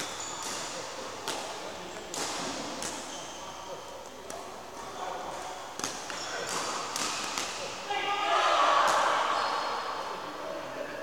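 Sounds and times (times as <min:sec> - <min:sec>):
rackets striking shuttlecocks: 0:05.8 - 0:07.6.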